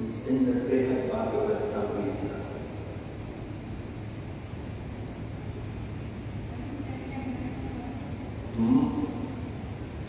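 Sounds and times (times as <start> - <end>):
faint hum: 0.0 - 10.0
low background rumble: 0.0 - 10.0.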